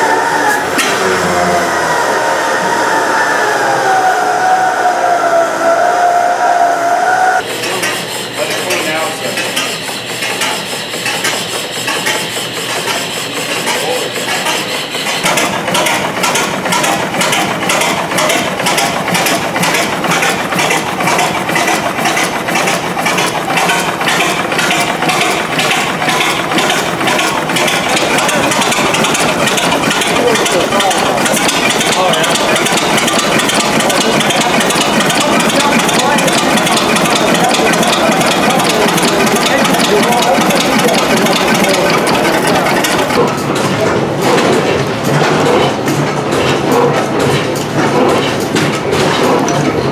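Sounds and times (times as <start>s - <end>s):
stationary gas engine running: 7.4s - 49.9s.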